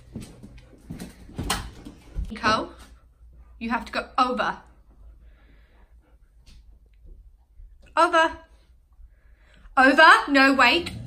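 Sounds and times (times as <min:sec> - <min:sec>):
dog knocking and rustling: 0:00.0 - 0:02.6.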